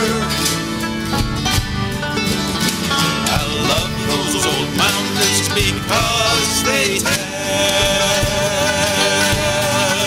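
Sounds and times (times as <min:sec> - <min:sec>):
bluegrass guitar and banjo music: 0:00.0 - 0:10.0.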